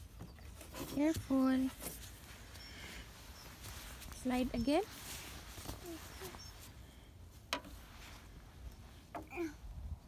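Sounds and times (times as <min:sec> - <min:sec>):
toddler voice sounds: 0:05.7 - 0:06.5, 0:09.2 - 0:09.7
wind rumble on microphone: 0:09.6 - 0:10.0.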